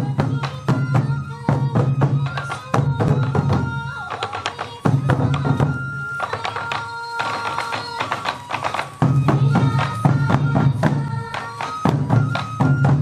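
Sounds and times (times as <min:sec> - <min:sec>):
bamboo flute high notes: 0:00.0 - 0:13.0
taiko drums beating: 0:00.0 - 0:13.0.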